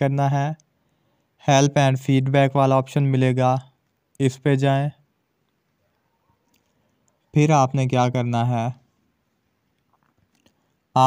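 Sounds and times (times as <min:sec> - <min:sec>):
faint small ticks: 0:05.4 - 0:07.3, 0:09.7 - 0:10.8.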